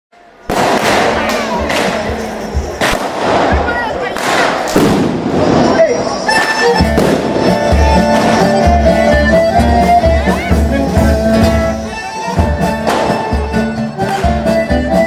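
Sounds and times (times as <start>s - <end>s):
voices: 0.3s - 15.0s
firecracker bangs and crackling: 0.4s - 8.6s, 12.8s - 13.3s
folk band playing: 0.4s - 15.0s
fiddle: 5.8s - 15.0s
drum beat: 6.3s - 15.0s.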